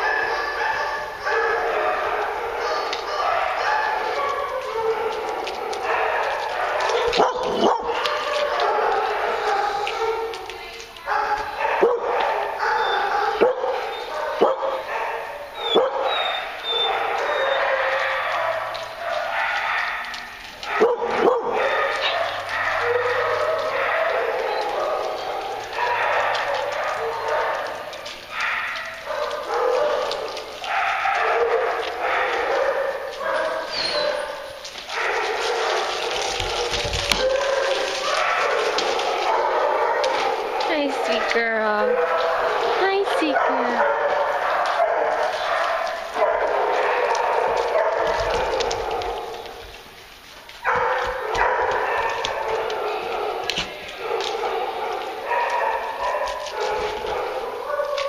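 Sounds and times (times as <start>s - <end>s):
dogs barking: 0.0s - 58.0s.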